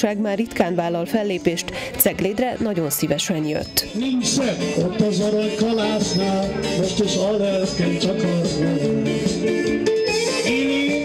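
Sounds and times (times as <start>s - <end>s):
live backing music: 0.0s - 11.0s
man singing into microphone: 3.9s - 11.0s.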